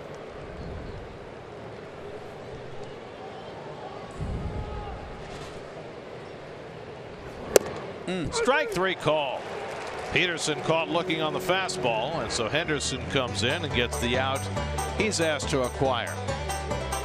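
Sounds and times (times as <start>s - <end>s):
baseball popping into mitt: 7.5s - 7.8s
crowd murmur: 8.8s - 13.7s.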